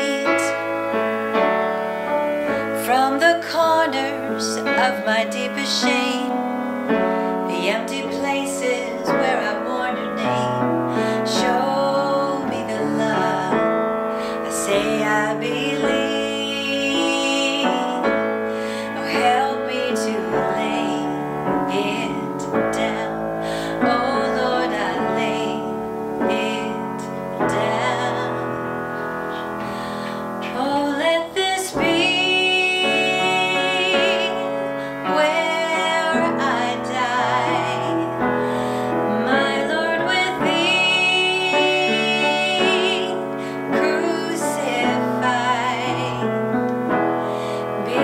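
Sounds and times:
woman singing: 0:00.0 - 0:01.6, 0:02.5 - 0:48.0
grand piano accompaniment: 0:00.0 - 0:48.0.

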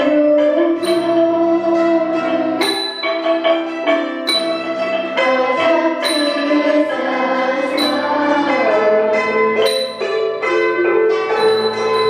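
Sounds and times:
xylophones and dulcimer playing: 0:00.0 - 0:12.0.

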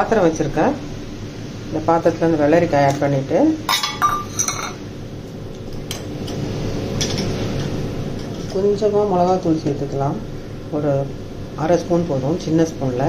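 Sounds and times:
spoon clinking on steel vessels: 0:03.7 - 0:04.8.

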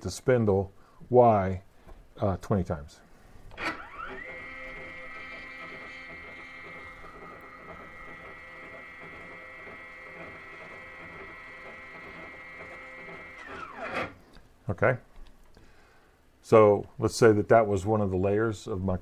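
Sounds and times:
stepper motors whining: 0:03.5 - 0:14.2.

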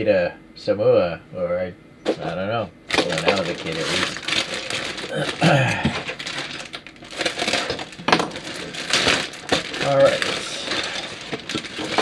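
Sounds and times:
plastic bag crinkling: 0:02.9 - 0:12.0.

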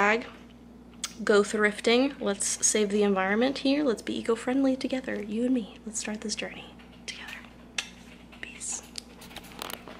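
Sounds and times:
steady low hum: 0:00.0 - 0:09.9
woman whispering: 0:05.6 - 0:07.6, 0:08.4 - 0:09.0.

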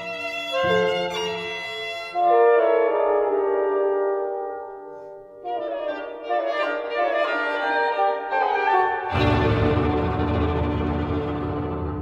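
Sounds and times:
violin playing: 0:00.0 - 0:12.0.

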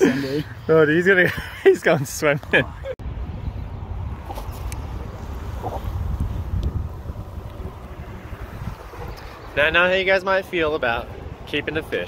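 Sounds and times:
wind buffeting microphone: 0:03.0 - 0:10.1.

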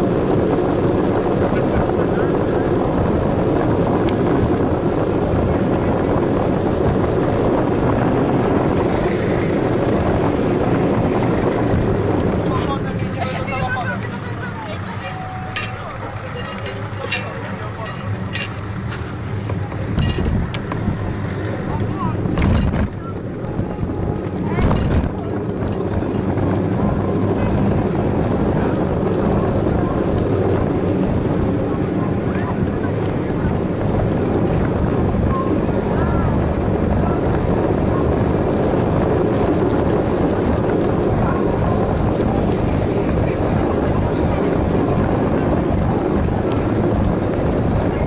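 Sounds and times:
wind rushing over microphone: 0:00.0 - 0:48.0
rolling noise: 0:00.3 - 0:48.0.

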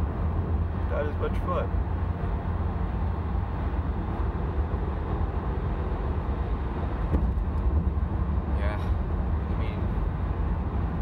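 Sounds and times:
car interior road rumble: 0:00.0 - 0:11.0.

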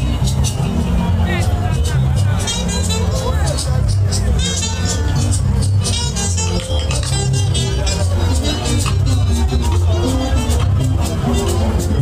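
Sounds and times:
crowd chatter: 0:00.0 - 0:12.0
live band music: 0:00.0 - 0:12.0.

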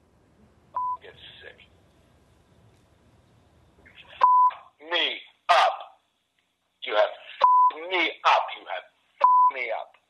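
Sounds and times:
censor bleep tone: 0:00.8 - 0:01.0, 0:04.2 - 0:04.5, 0:07.4 - 0:07.8, 0:09.2 - 0:09.5
man shouting angrily: 0:05.5 - 0:05.9.

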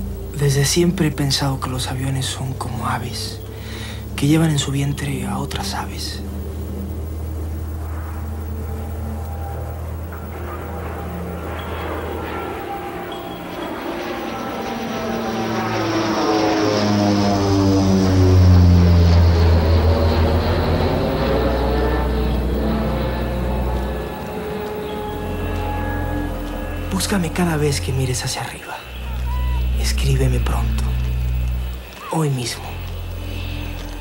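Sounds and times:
airplane flying overhead: 0:00.0 - 0:34.0.

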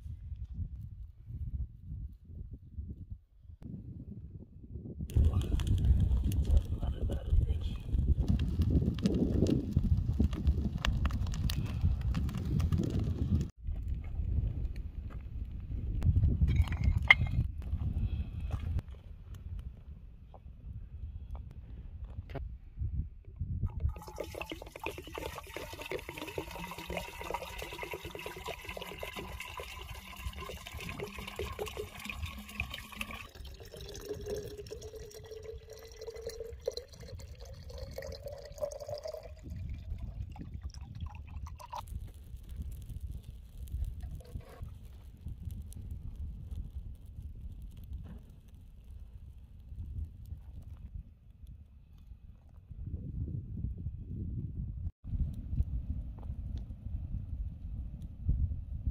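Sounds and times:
water pouring into metal kettle: 0:23.7 - 0:41.8.

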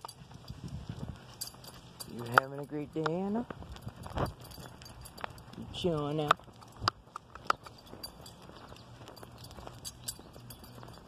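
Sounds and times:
footsteps on asphalt: 0:00.0 - 0:11.0.

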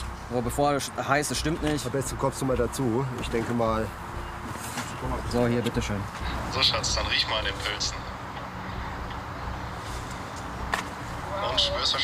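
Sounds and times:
low outdoor rumble: 0:05.0 - 0:12.0.

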